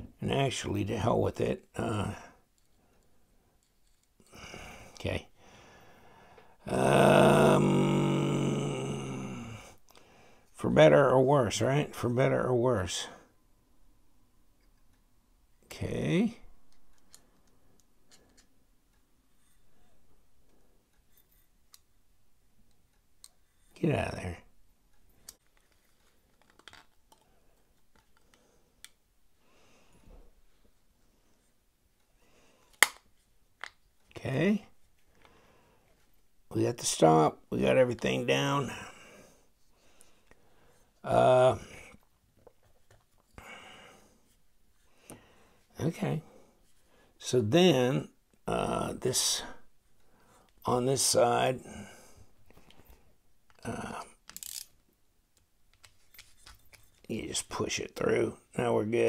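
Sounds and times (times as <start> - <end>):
folding knife metal parts clicking: 54.3 - 54.7
screwdriver scrape: 54.3 - 54.7.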